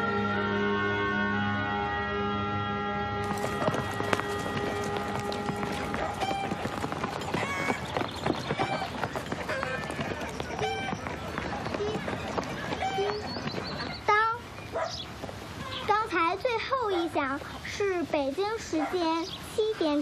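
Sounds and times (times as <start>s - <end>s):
held music chords: 0.0s - 7.2s
children calling and chanting: 3.3s - 20.0s.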